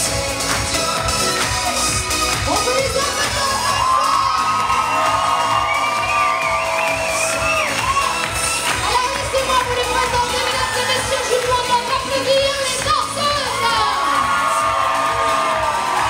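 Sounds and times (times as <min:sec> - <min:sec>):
crowd cheering and shouting: 0:00.0 - 0:16.0
music playing: 0:00.0 - 0:16.0.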